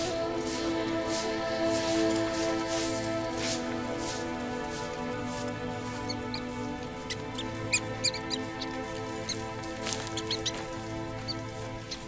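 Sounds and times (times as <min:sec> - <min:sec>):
music of sustained tones: 0:00.0 - 0:12.0
mouse squeaking: 0:06.1 - 0:12.0.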